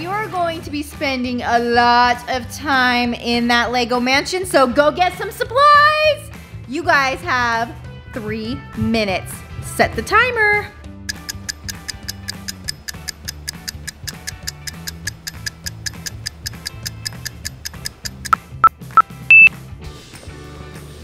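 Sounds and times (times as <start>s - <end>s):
background music: 0.0s - 21.0s
fast even ticking: 11.1s - 19.5s
short beeps: 18.4s - 19.5s
longer higher-pitched beep: 18.7s - 19.5s.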